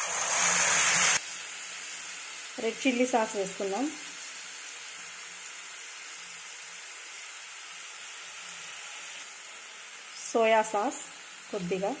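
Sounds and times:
liquid hissing in hot oil: 0:00.0 - 0:12.0
oil sizzling: 0:00.0 - 0:12.0.

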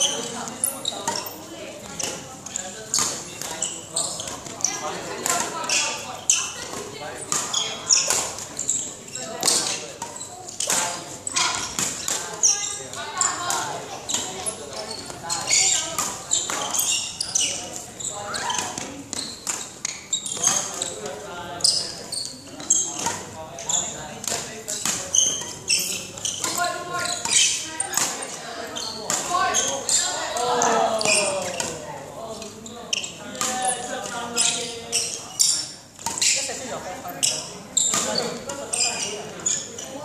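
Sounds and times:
shoe squeaks: 0:00.0 - 0:40.0.

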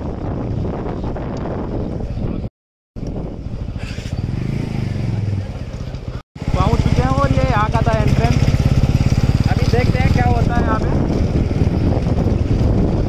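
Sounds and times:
motorcycle engine running: 0:03.0 - 0:13.0.

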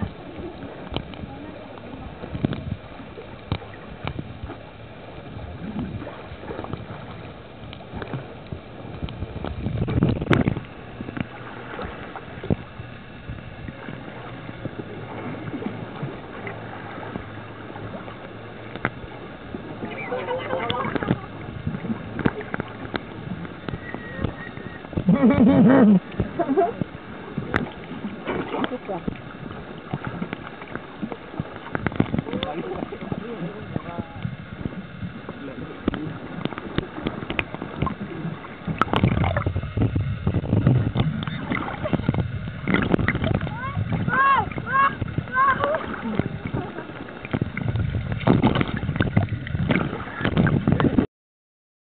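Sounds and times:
bubbling: 0:00.0 - 0:51.0
muffled underwater noise: 0:00.0 - 0:51.0
sharp clicks and crackles: 0:35.8 - 0:38.0.

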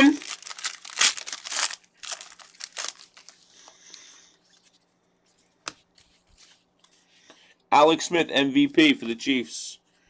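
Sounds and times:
plastic packaging crinkling: 0:00.0 - 0:03.6.

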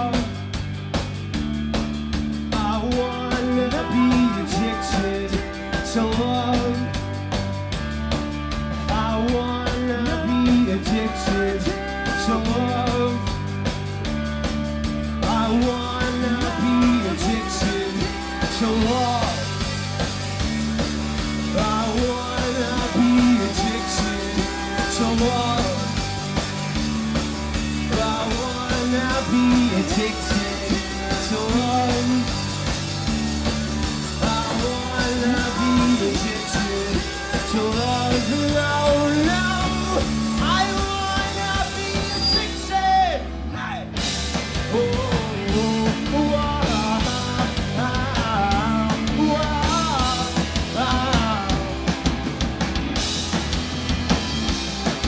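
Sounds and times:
live rock band playing: 0:00.0 - 0:55.0
person singing: 0:02.5 - 0:07.0, 0:08.7 - 0:13.4, 0:15.2 - 0:19.9, 0:21.3 - 0:26.2, 0:27.5 - 0:32.7, 0:34.1 - 0:44.0, 0:44.6 - 0:52.0.

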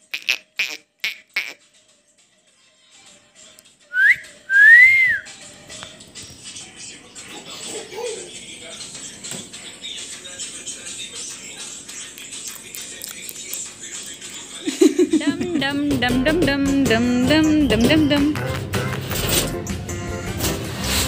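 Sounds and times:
person whistling: 0:03.9 - 0:05.3.

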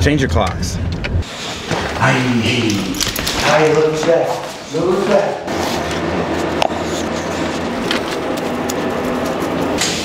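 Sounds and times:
low mechanical drone: 0:04.6 - 0:10.0.

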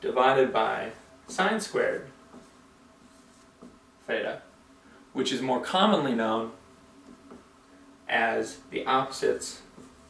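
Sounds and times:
marker writing on whiteboard: 0:00.4 - 0:03.8, 0:09.6 - 0:10.0.

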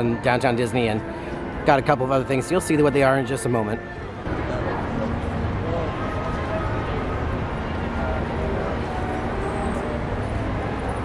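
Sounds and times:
low rumble of road traffic: 0:00.0 - 0:11.0.

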